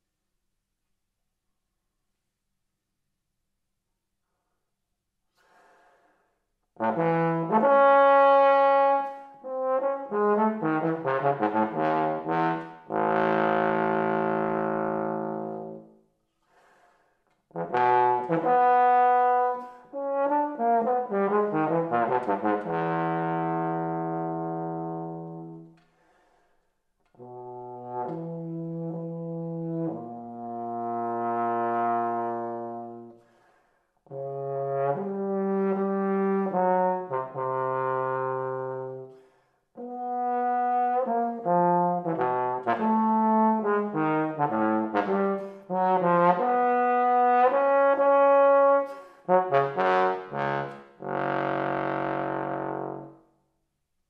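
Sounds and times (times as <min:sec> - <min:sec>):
bass trombone playing: 0:06.8 - 0:15.9, 0:17.5 - 0:25.7, 0:27.2 - 0:33.2, 0:34.1 - 0:39.1, 0:39.8 - 0:53.2.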